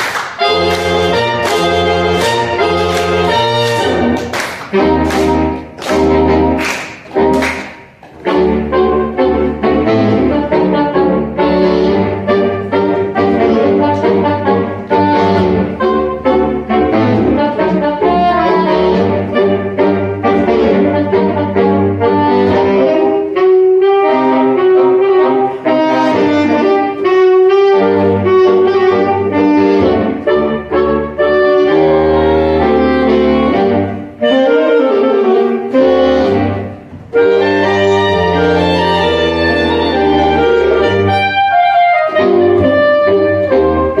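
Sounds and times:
saxophone quartet chords: 0:00.0 - 0:44.0.

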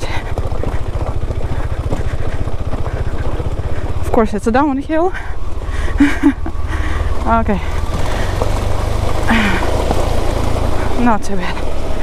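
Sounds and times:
motorcycle engine running: 0:00.0 - 0:12.0
wind and riding noise: 0:00.0 - 0:12.0.

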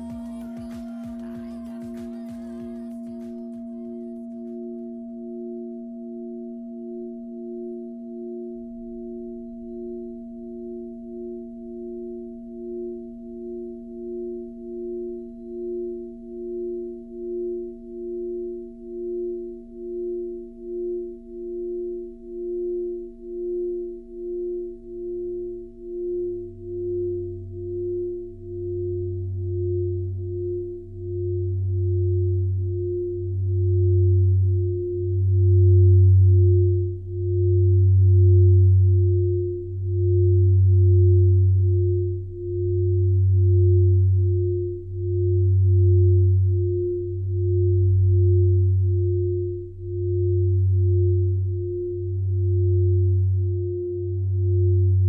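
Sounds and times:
low synthesizer hum: 0:00.0 - 0:55.0
pulsing high synth tone: 0:00.0 - 0:55.0
deep bass tone: 0:04.0 - 0:55.0.

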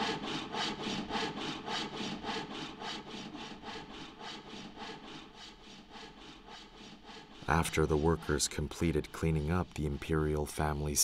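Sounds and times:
hand saw cutting wood: 0:00.0 - 0:11.0.

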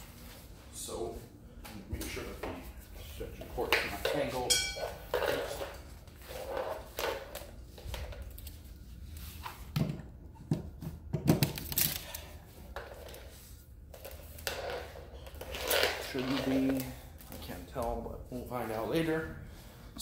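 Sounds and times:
person moving on tile floor: 0:00.0 - 0:09.8.

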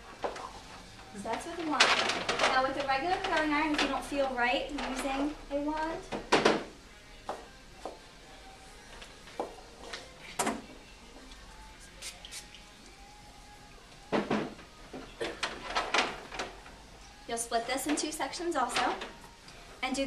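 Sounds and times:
faint background music: 0:00.0 - 0:20.0
hairstyling tools clicking and knocking: 0:05.8 - 0:06.7.

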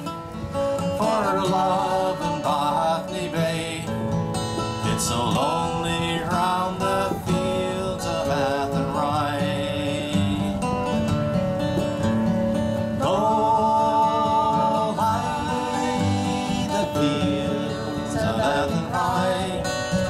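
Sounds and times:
person singing slow melody: 0:00.0 - 0:11.2, 0:11.9 - 0:20.0
acoustic guitar strumming: 0:00.0 - 0:20.0.

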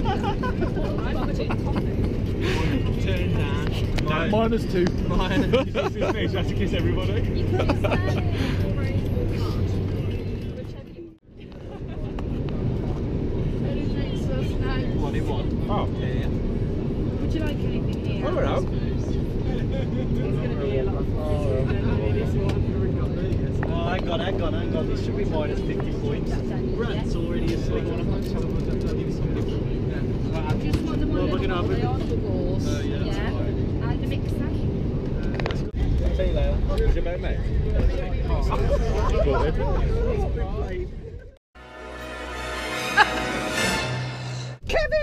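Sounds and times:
people chatting: 0:00.0 - 0:13.0, 0:17.2 - 0:34.7, 0:35.4 - 0:41.3, 0:44.6 - 0:45.0
airliner cabin rumble: 0:00.0 - 0:41.4.

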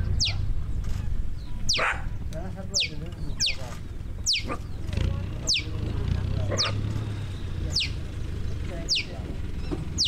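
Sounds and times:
low engine hum: 0:00.0 - 0:10.0
faint wavering lower calls: 0:04.2 - 0:04.7, 0:06.6 - 0:08.2
falling whistled calls: 0:04.2 - 0:04.7, 0:06.6 - 0:08.1.

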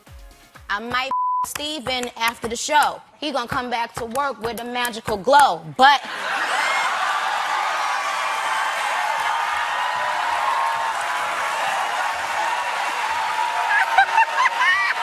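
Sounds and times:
audience laughing and applauding: 0:06.0 - 0:15.0
whoops: 0:06.5 - 0:15.0.

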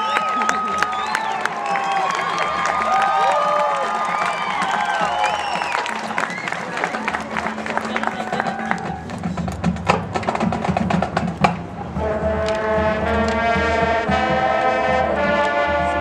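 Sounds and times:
marching band low held tones: 0:00.0 - 0:16.0
brass sustained chords: 0:11.9 - 0:16.0.

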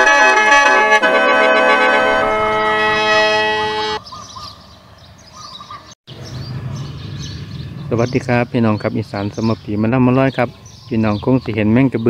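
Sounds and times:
organ-like intro music: 0:00.0 - 0:04.0
small birds chirping: 0:04.0 - 0:12.0.

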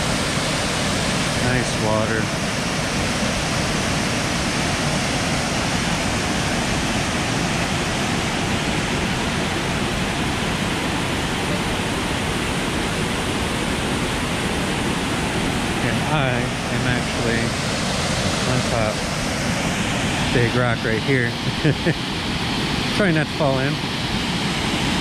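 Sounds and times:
waterfall rushing: 0:00.0 - 0:25.0.

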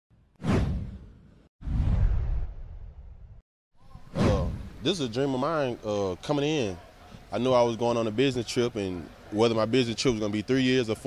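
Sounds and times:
deep low boom: 0:01.6 - 0:03.4.

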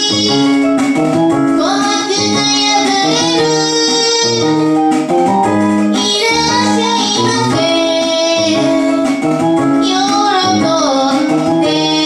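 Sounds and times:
woman singing pop song: 0:00.0 - 0:00.7, 0:01.6 - 0:05.0, 0:05.9 - 0:12.0
keyboard chords: 0:00.0 - 0:12.0.

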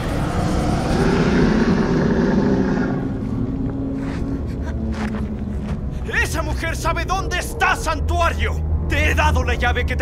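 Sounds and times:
loud low rumbling: 0:00.0 - 0:06.1
steady low hum: 0:00.0 - 0:10.0.

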